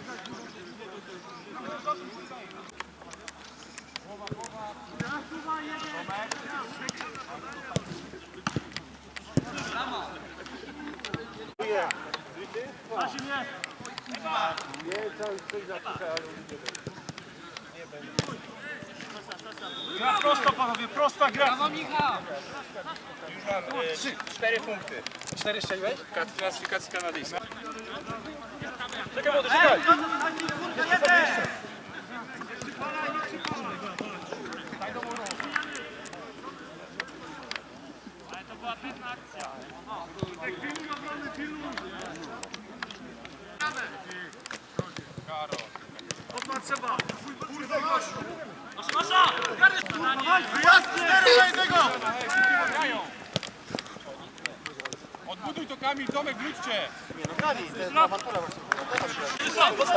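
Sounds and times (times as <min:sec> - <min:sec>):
players shouting and calling: 0:00.0 - 0:59.9.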